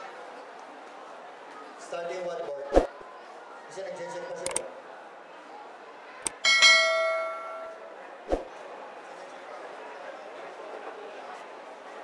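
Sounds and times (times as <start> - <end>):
metallic bell-like ring: 6.4 - 7.8.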